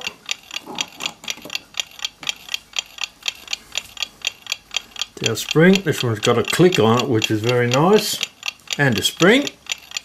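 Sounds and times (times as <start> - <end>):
mechanical clock ticking: 0.0 - 10.0.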